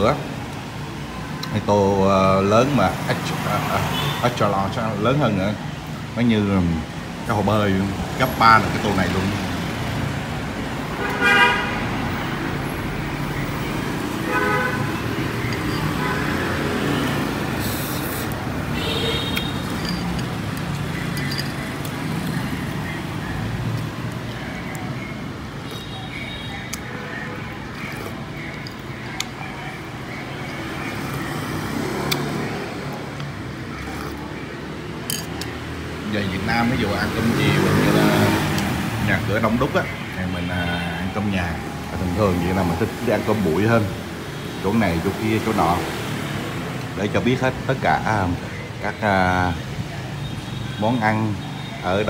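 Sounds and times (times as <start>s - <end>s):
street traffic noise: 0.0s - 52.0s
vehicle horn toots: 11.0s - 11.8s, 14.3s - 15.0s.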